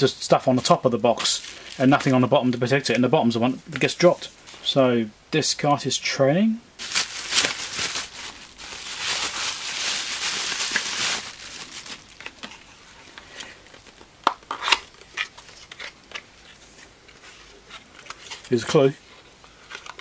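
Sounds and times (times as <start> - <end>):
bubble wrap crinkling: 0.6 - 2.4, 6.8 - 18.6.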